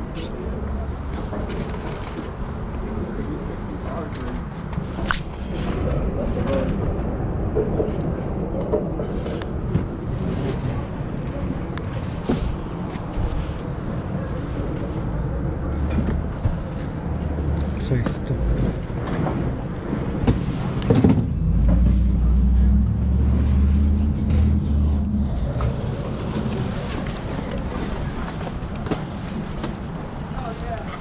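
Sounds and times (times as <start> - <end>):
low rumble: 18.4 - 28.2.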